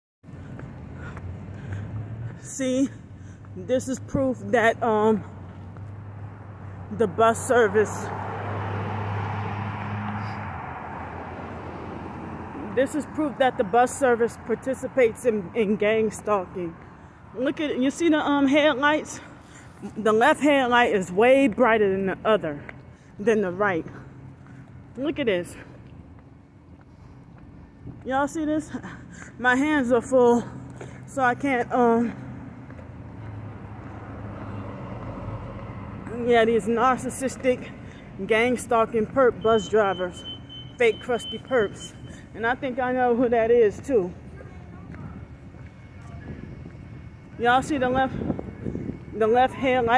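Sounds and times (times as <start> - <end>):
tyre and road noise: 0.2 - 49.9
vehicle engine hum: 0.2 - 49.9.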